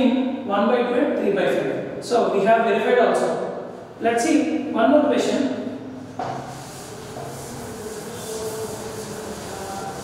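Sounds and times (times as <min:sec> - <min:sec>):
duster scraping chalkboard: 0:06.2 - 0:10.0.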